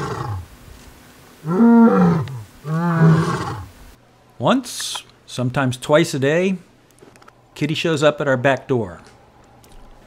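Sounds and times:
lion roaring: 0.0s - 0.5s, 1.4s - 3.7s.

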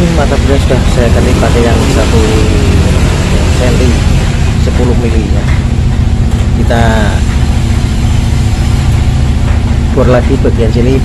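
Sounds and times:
electric motor humming: 0.0s - 11.0s.

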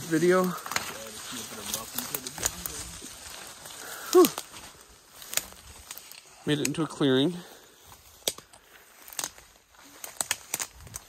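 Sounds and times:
twigs snapping: 0.0s - 6.8s, 7.8s - 11.0s
leaves and branches brushing: 0.0s - 11.0s.

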